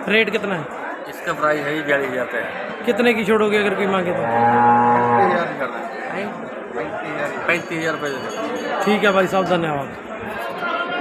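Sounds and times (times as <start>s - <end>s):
cow mooing: 4.1s - 5.5s.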